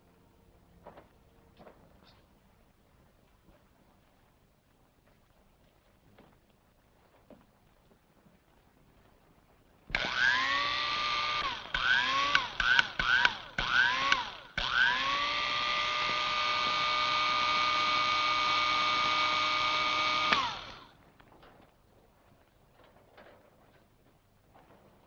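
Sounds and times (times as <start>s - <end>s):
electric hair clippers running: 10.0s - 20.9s.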